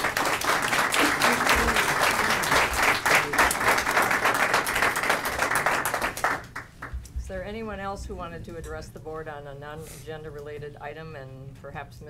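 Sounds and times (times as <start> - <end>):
group of people clapping: 0.0 - 7.0.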